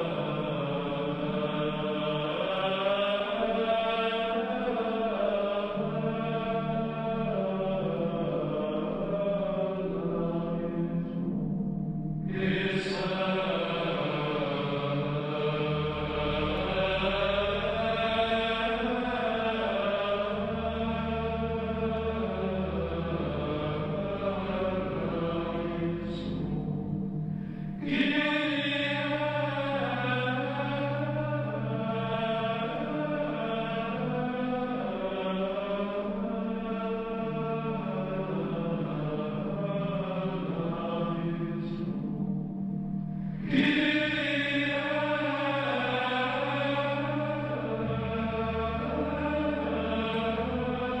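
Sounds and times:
low drone: 0:00.0 - 0:51.0
slow chanting: 0:00.0 - 0:51.0.

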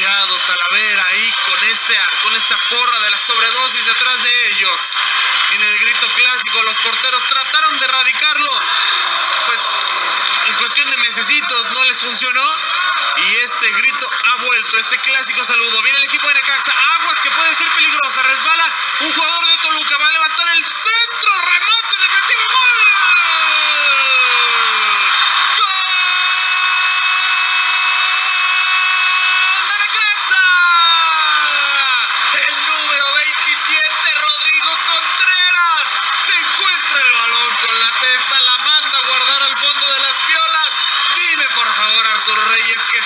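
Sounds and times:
commentator shouting: 0:00.0 - 0:43.0.

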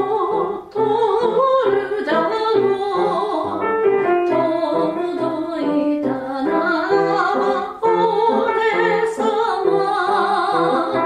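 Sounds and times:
piano accompaniment: 0:00.0 - 0:11.0
soprano singing: 0:00.0 - 0:11.0.

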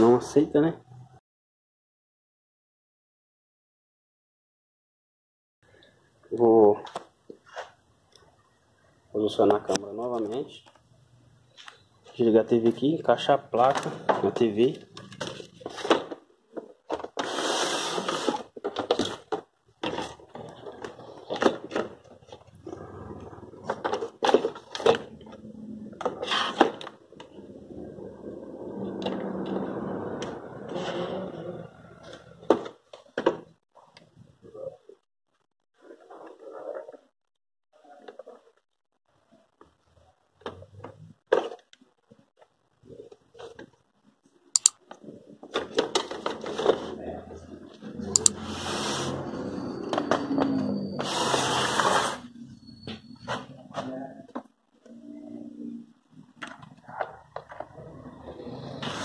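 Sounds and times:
clicks and knocks of handled parts: 0:44.6 - 0:46.5.

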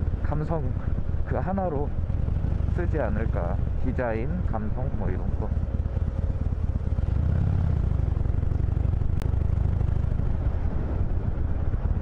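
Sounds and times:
motorcycle engine running: 0:00.0 - 0:12.0
wind rumble: 0:00.0 - 0:12.0.

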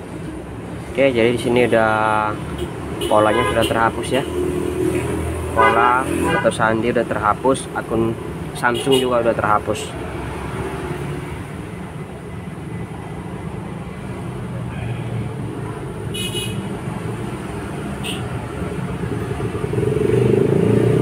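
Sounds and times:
road traffic rumble: 0:00.0 - 0:21.0
vehicle horn toot: 0:03.0 - 0:03.8, 0:05.6 - 0:06.5, 0:08.8 - 0:09.1, 0:16.1 - 0:16.7, 0:18.0 - 0:18.3.

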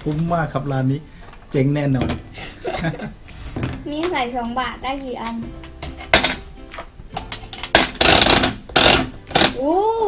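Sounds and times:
girl saying ooh: 0:09.6 - 0:10.0.

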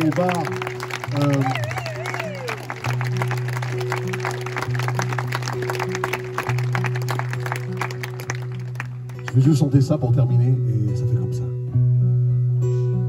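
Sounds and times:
hand claps: 0:00.0 - 0:09.5.

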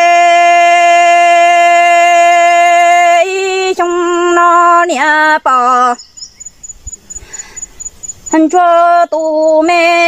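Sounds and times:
insect chirping: 0:01.5 - 0:10.0.

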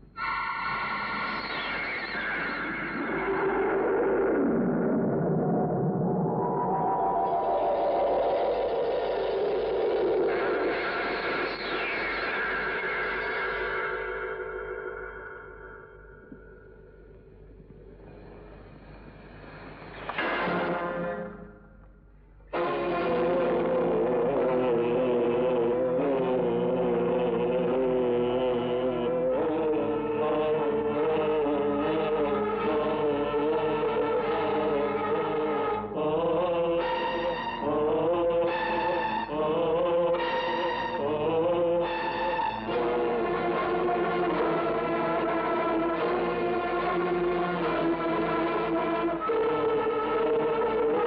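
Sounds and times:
held note of horror music: 0:00.0 - 0:21.8
eerie held chord sliding down: 0:05.3 - 0:10.7
low tone: 0:12.4 - 0:20.2.

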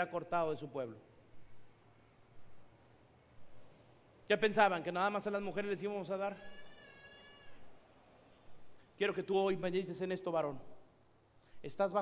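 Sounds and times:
faint room sounds: 0:00.0 - 0:12.0
high-pitched voice-like cry: 0:06.4 - 0:07.7.

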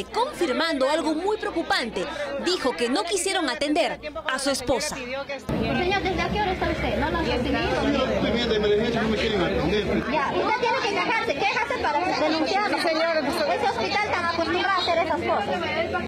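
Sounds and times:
overlapping excited chatter: 0:00.0 - 0:16.0.

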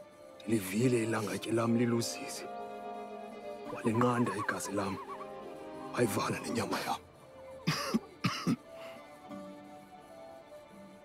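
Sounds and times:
background music with held tones: 0:00.0 - 0:11.0
man's harsh cough-like bursts: 0:07.6 - 0:08.6.

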